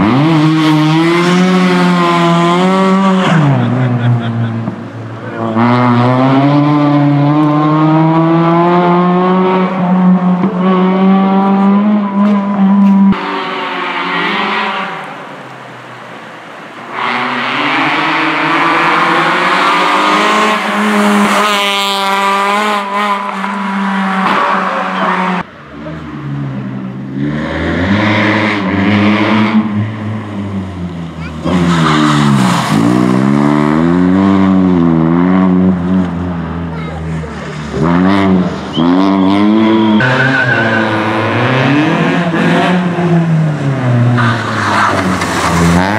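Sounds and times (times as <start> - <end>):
rally car engine revving: 0.0 - 15.4, 16.8 - 45.9.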